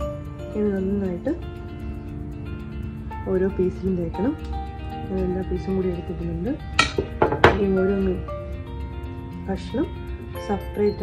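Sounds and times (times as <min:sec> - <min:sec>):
soft background music: 0:00.0 - 0:11.0
glass dish clinking: 0:06.8 - 0:07.7.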